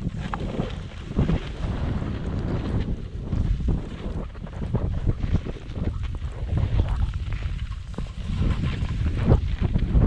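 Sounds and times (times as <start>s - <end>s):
scraping sliding over snow: 0.0s - 10.0s
wind buffeting microphone: 0.0s - 10.0s.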